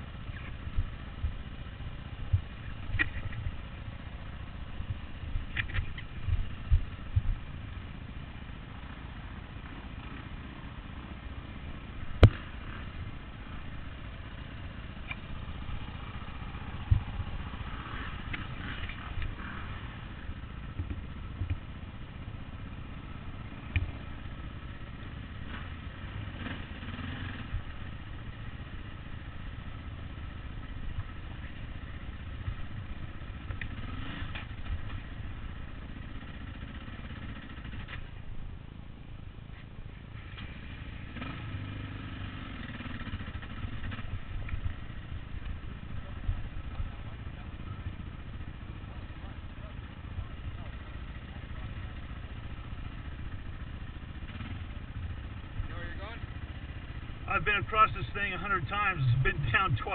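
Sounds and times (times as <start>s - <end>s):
dirt bike engine at low revs: 0.0s - 59.9s.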